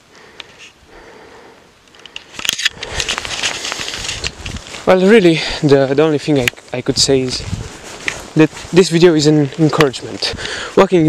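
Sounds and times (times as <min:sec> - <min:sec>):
camera handling clicks and rustle: 0:01.9 - 0:04.8, 0:08.0 - 0:08.3.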